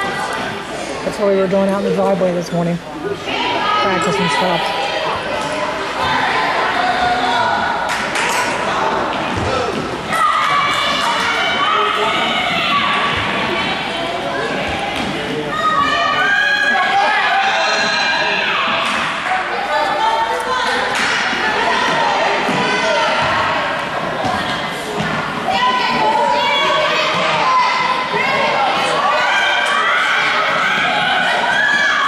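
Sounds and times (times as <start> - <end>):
children shouting: 10.0 - 14.8, 15.5 - 24.8, 25.5 - 32.0.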